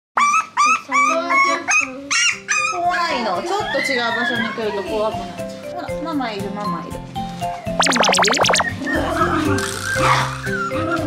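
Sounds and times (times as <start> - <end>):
puppies crying: 3.6 - 4.8.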